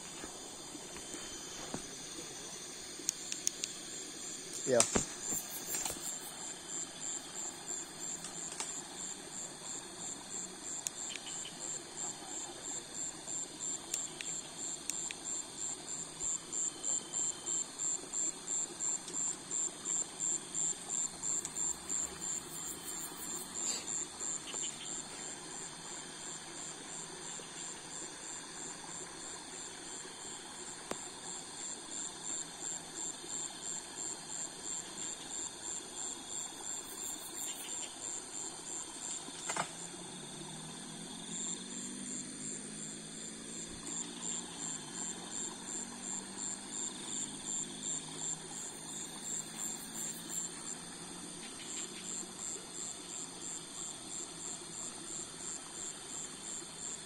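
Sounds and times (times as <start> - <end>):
insect pulsing trill: 0.0 - 53.9
insects humming: 0.0 - 57.0.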